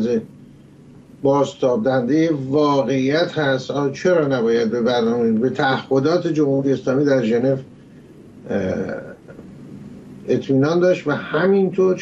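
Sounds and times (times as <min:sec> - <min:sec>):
low room noise: 0:00.0 - 0:12.0
man's throaty vocal noise: 0:08.4 - 0:09.9.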